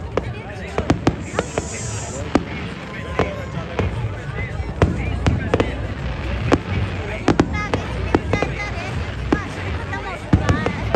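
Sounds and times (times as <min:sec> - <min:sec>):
fireworks bangs and cracks: 0:00.0 - 0:10.9.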